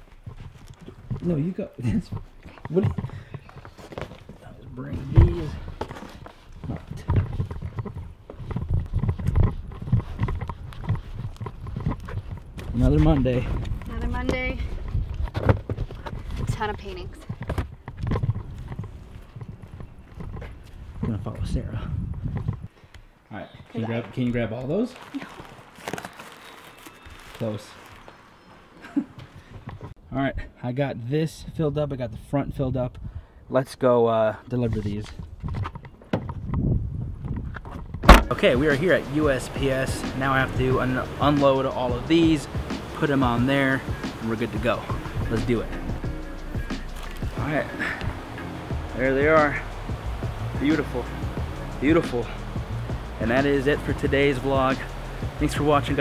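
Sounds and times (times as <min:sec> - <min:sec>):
footsteps on concrete: 0:00.0 - 0:21.3.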